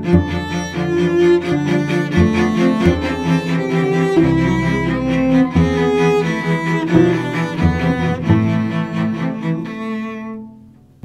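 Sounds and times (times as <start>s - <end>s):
cello duet: 0.0s - 11.0s.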